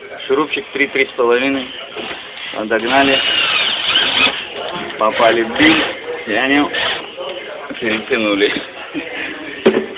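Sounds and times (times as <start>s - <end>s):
drill driving screw into wood: 2.9s - 4.4s.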